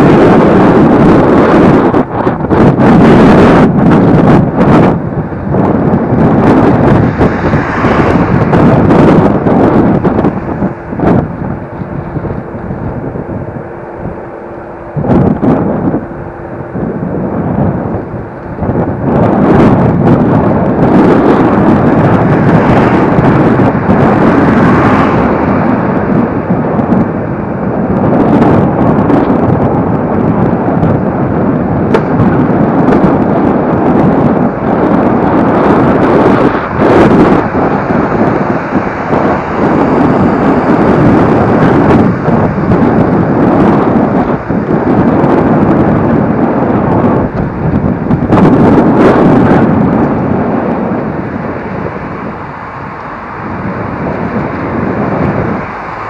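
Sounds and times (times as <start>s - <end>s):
electric scooter rolling rumble: 0.0s - 56.0s
wind buffeting microphone: 0.0s - 56.0s.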